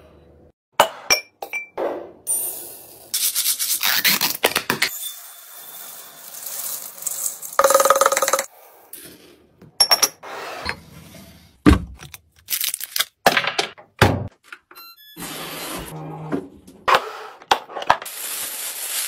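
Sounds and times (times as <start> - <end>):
hard items clinking: 6.8 - 8.5.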